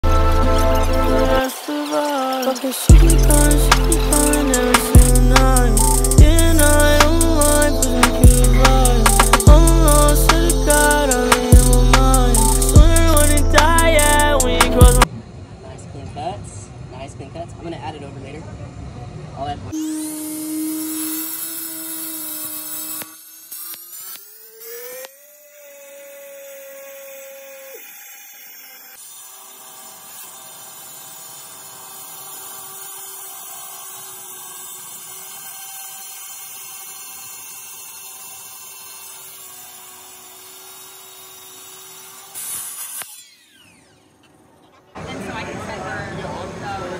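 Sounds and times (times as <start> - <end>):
cut-off saw cutting concrete: 0.0 - 15.1, 19.7 - 45.7.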